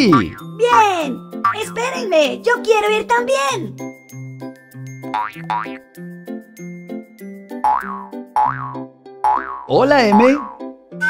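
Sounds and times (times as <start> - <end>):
cheerful children's music: 0.0 - 9.1, 9.7 - 11.0.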